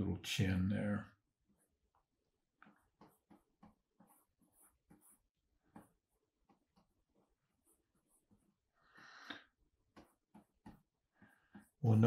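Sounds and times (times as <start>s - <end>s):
stylus scratching on drawing tablet: 1.2s - 12.0s.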